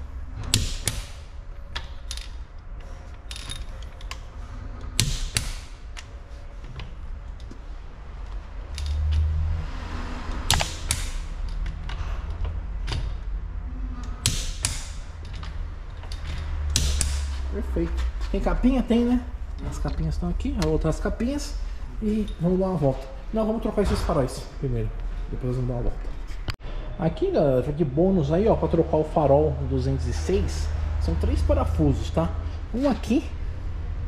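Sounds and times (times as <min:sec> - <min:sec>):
steady low hum: 0:00.0 - 0:34.0
torque wrench clicking: 0:14.0 - 0:17.5.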